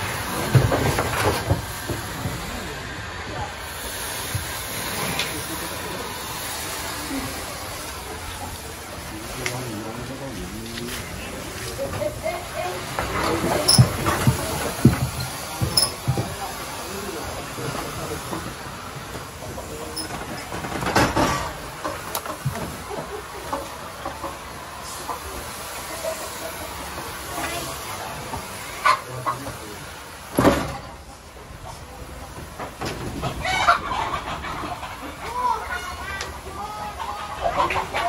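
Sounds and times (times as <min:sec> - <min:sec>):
thermal fogging machine running: 0:00.0 - 0:33.0.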